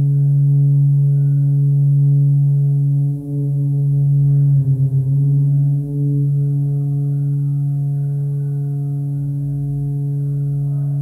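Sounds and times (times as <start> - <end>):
synthesizer low drone: 0.0 - 11.0.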